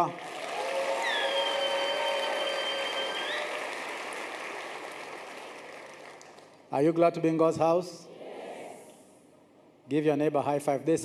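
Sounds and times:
congregation applauding: 0:00.0 - 0:06.6
high-pitched held cheers: 0:00.2 - 0:04.2.

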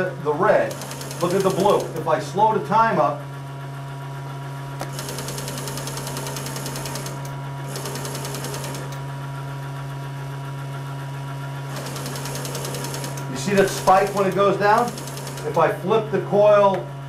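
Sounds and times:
small electric motor buzzing: 0:00.6 - 0:02.0, 0:04.8 - 0:09.1, 0:11.7 - 0:15.7.

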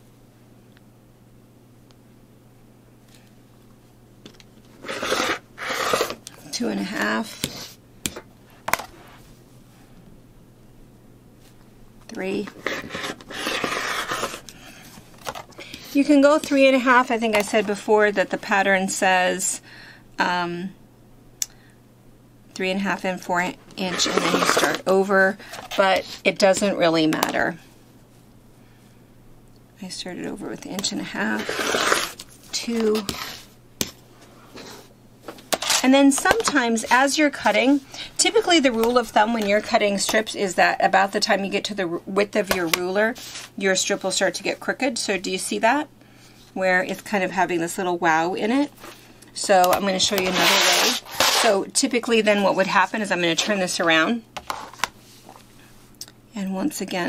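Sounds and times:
rotary cutter hissing through fabric: 0:04.8 - 0:06.2, 0:50.2 - 0:51.6
rotary cutter rasping through fabric: 0:04.8 - 0:06.2, 0:12.6 - 0:14.4, 0:23.8 - 0:24.8, 0:31.3 - 0:32.2, 0:50.2 - 0:51.6.

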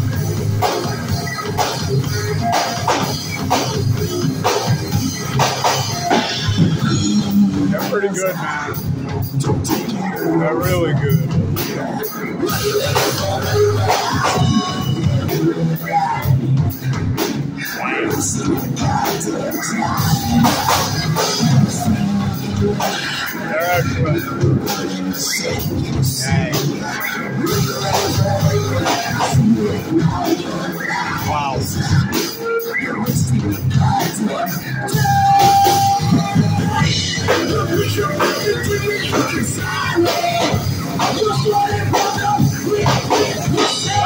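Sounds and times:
bass guitar: 0:00.0 - 0:44.0
drum kit: 0:00.0 - 0:44.0
electric guitar: 0:00.0 - 0:44.0
live band playing amplified music: 0:00.0 - 0:44.0.

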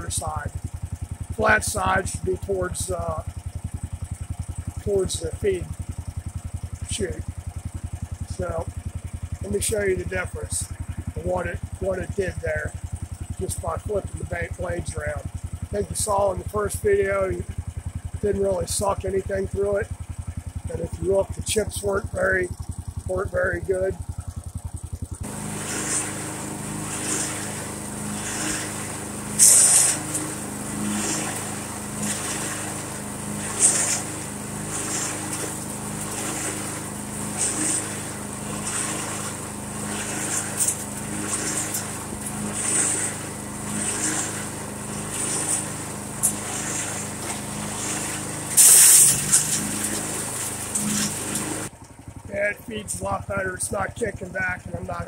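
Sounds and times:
chipper shredder engine drone: 0:00.0 - 0:55.0
wood cracking being cut: 0:01.3 - 0:02.1, 0:25.2 - 0:51.7.

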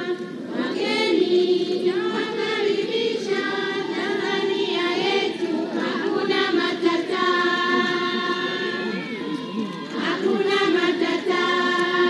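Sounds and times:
group of voices singing: 0:00.0 - 0:12.0.

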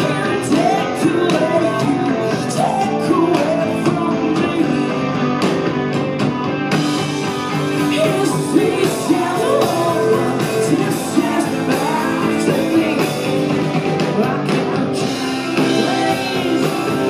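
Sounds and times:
woman singing lead vocal: 0:00.0 - 0:05.0, 0:07.8 - 0:17.0
rock band playing: 0:00.0 - 0:17.0.

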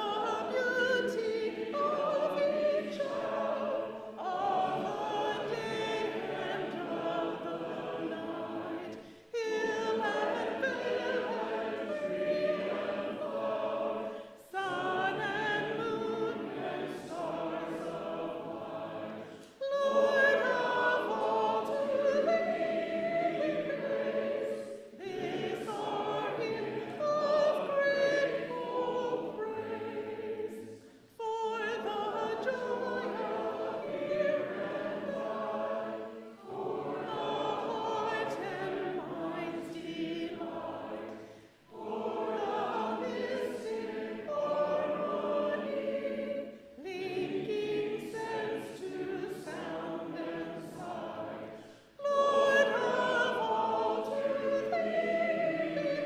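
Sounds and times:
congregation singing a hymn: 0:00.0 - 0:56.0.

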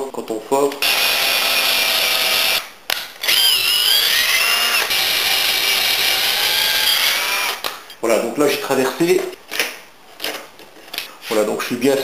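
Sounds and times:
cordless drill boring through wood: 0:00.8 - 0:07.7.

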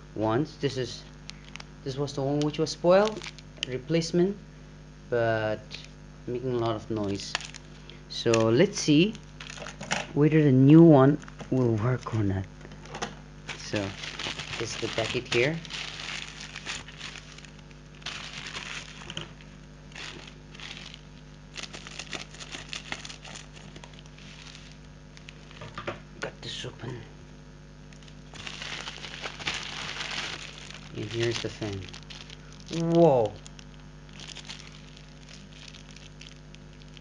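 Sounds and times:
steady low hum: 0:00.0 - 0:37.0
small crackles: 0:01.0 - 0:03.9, 0:05.6 - 0:10.2, 0:11.1 - 0:26.1, 0:27.7 - 0:37.0
plastic packaging crinkling: 0:01.2 - 0:03.8, 0:06.6 - 0:10.1, 0:11.1 - 0:25.8, 0:27.8 - 0:37.0.

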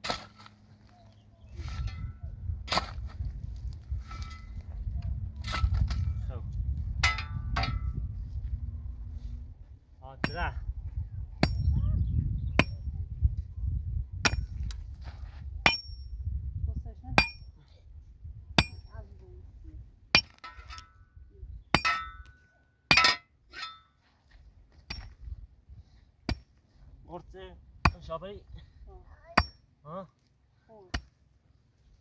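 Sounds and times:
sharp strikes on stony ground: 0:00.0 - 0:00.6, 0:01.6 - 0:04.7, 0:05.4 - 0:08.0, 0:10.1 - 0:10.6, 0:11.4 - 0:11.8, 0:12.5 - 0:12.9, 0:14.2 - 0:16.2, 0:17.1 - 0:17.5, 0:18.6 - 0:19.0, 0:20.1 - 0:21.1, 0:21.7 - 0:24.0, 0:24.7 - 0:25.3, 0:26.2 - 0:26.6, 0:27.8 - 0:28.2, 0:29.3 - 0:29.6, 0:30.9 - 0:31.2.

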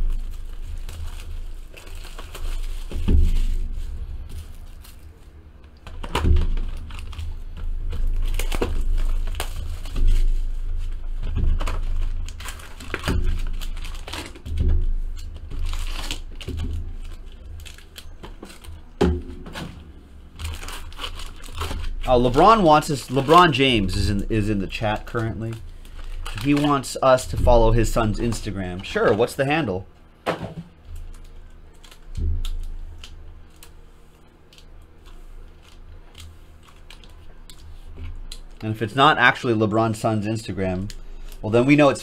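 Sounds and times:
plastic wrap tearing and crumpling: 0:00.0 - 0:29.7, 0:30.8 - 0:42.0
foil packs crinkling: 0:00.0 - 0:29.9, 0:30.8 - 0:42.0.

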